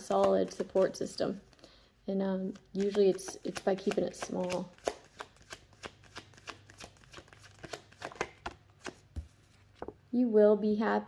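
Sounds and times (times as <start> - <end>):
cards being shuffled: 0.0 - 1.1, 2.5 - 10.0.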